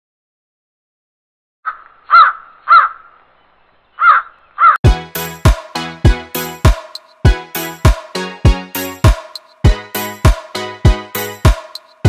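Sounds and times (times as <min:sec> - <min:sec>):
crow cawing: 0:01.7 - 0:03.2, 0:04.0 - 0:04.8
music with heavy beat: 0:04.8 - 0:12.0.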